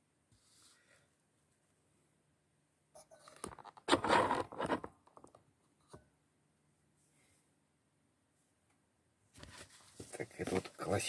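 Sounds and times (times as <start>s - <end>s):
paper rustling: 9.4s - 11.0s.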